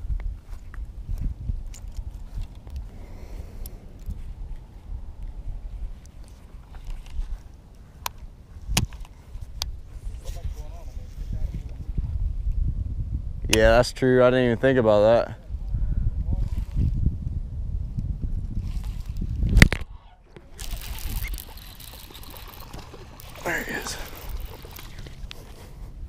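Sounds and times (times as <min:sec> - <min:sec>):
wind rumble: 0:00.0 - 0:10.2, 0:11.0 - 0:14.0, 0:15.3 - 0:26.0
fishing reel clicks: 0:20.5 - 0:25.3.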